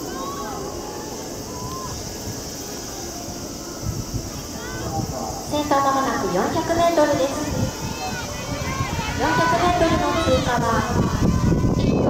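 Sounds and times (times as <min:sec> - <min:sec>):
distant spectators shouting: 0:00.0 - 0:12.0
steady outdoor hiss: 0:00.0 - 0:12.0.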